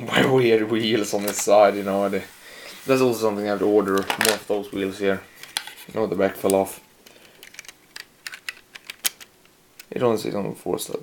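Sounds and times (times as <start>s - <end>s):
plastic bricks clicking: 6.4s - 10.0s.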